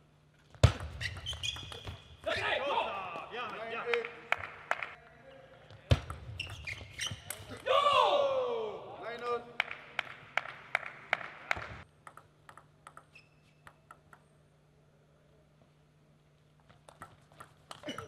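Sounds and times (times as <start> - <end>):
player shouting: 2.3 - 3.6, 7.5 - 9.1
table tennis ball clicking: 11.5 - 14.3.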